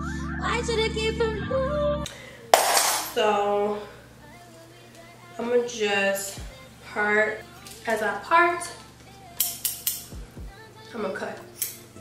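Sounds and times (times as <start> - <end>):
scissors clicking: 9.4 - 10.1, 11.6 - 11.8.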